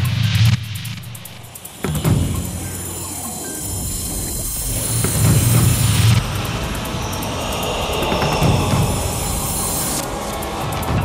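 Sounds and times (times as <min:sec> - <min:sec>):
rushing noise with low rumble: 0:00.0 - 0:11.0.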